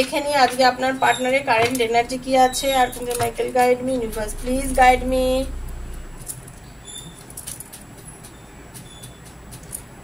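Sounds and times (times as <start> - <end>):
cards rustling and ticking: 7.2 - 10.0.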